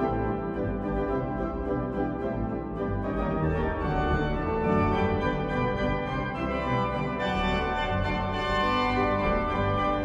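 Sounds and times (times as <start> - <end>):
pipe organ playing hymn: 0.0 - 10.0.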